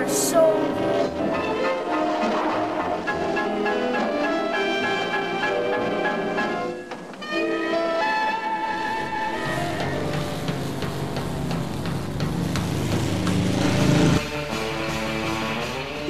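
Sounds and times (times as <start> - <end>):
car engine revving: 8.9 - 16.0.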